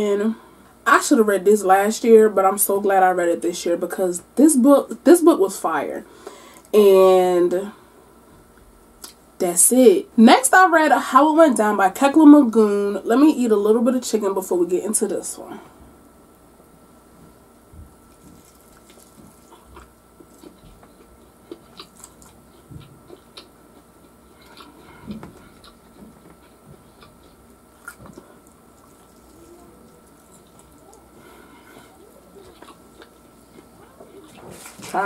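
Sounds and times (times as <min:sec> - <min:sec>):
wet chewing and biting: 0:17.9 - 0:34.8.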